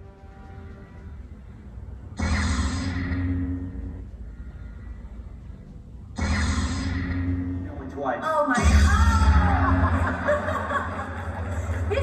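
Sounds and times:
lightsaber low hum: 0.6s - 7.9s.

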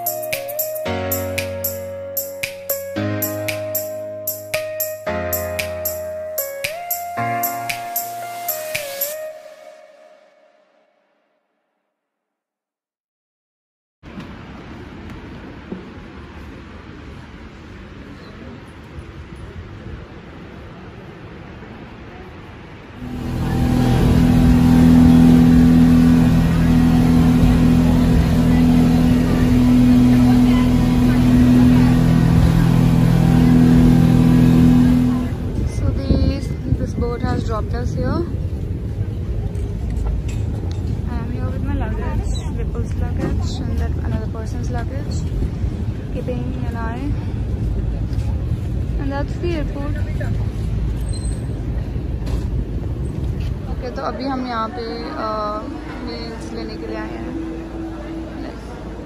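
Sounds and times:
low outdoor rumble: 14.1s - 59.0s
speedboat engine drone: 23.0s - 36.9s, 54.8s - 59.0s.

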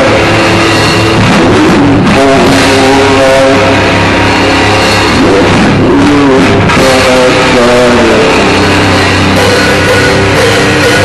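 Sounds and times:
heavy rock band playing: 0.0s - 11.0s.

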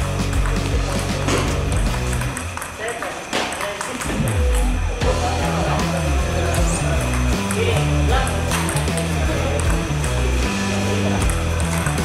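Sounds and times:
background music: 0.0s - 2.6s, 4.0s - 12.0s
ping pong ball hit by paddle: 0.0s - 4.8s, 6.4s - 10.2s, 11.1s - 12.0s.

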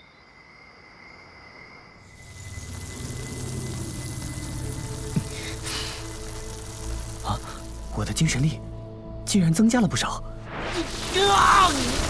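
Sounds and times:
fizzing hiss: 2.0s - 8.7s, 10.5s - 12.0s
low music drone: 2.2s - 10.4s.

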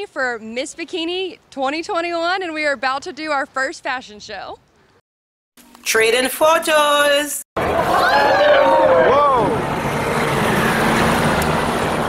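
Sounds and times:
passing vehicle engine: 7.7s - 12.0s.

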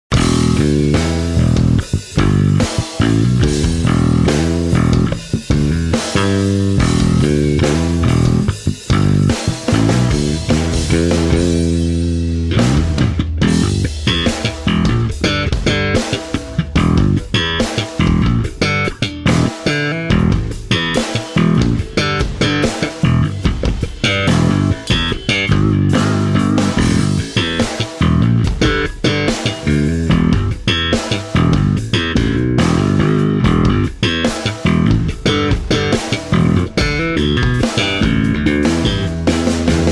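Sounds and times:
electric bass playing: 0.1s - 39.9s.

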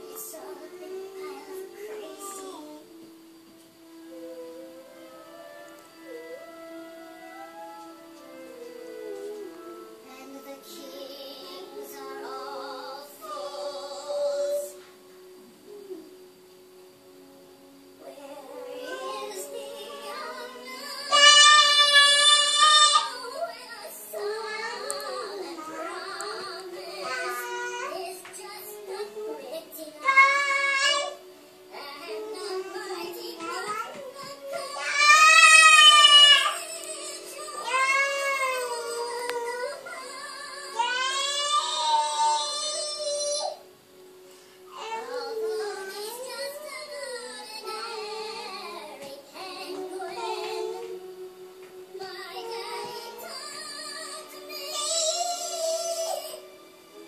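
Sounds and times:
toddler singing wordlessly: 0.0s - 3.0s, 18.1s - 43.6s, 44.7s - 51.0s, 52.0s - 56.5s
song playing in background: 0.0s - 57.0s.

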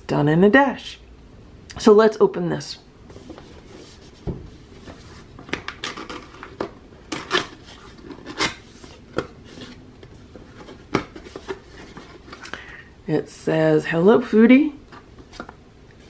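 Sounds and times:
cardboard scraping and rustling: 3.1s - 12.5s.

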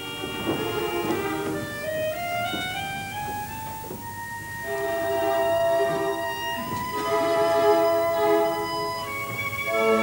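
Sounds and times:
orchestra playing held notes: 0.0s - 10.0s.

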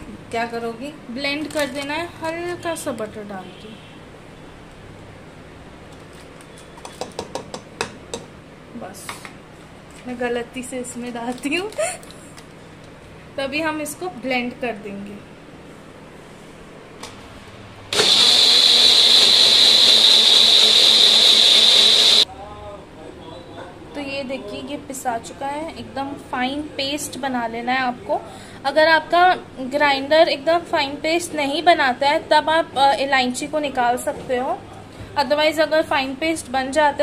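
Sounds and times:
mixer grinder motor whining: 17.9s - 22.2s.

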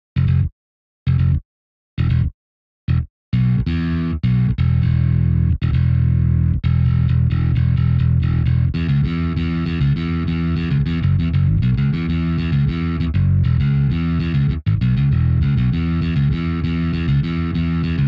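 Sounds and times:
rock electric bass line: 0.2s - 0.5s, 1.1s - 1.4s, 2.0s - 2.3s, 2.9s - 18.0s.

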